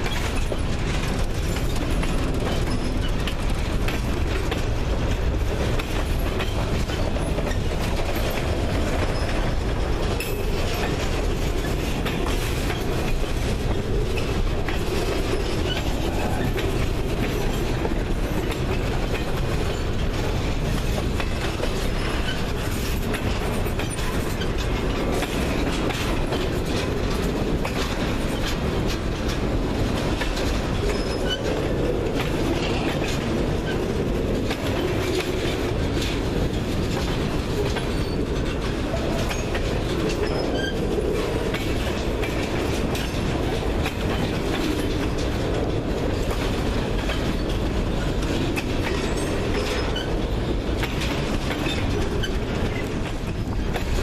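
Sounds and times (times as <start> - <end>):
steel wheels clicking over rails: 0.0 - 54.0.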